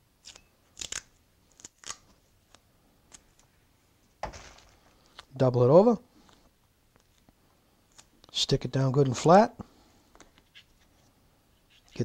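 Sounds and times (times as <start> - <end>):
masking tape peeled and torn: 0.2 - 3.4.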